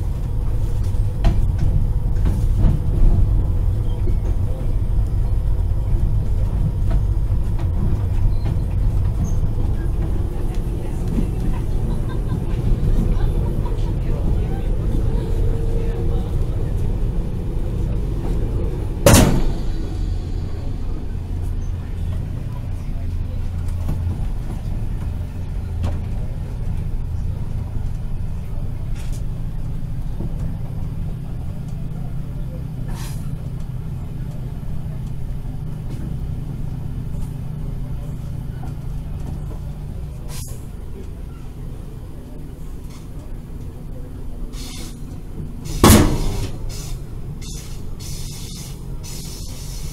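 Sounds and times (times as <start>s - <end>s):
train rumbling on track: 0.0s - 49.9s
sharp loud knock: 19.1s - 19.9s, 45.8s - 46.5s.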